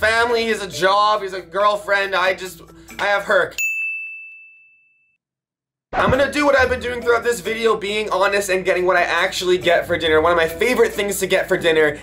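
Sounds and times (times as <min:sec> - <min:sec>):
high bell-like ding: 0:02.9 - 0:05.2
person speaking: 0:06.0 - 0:12.0.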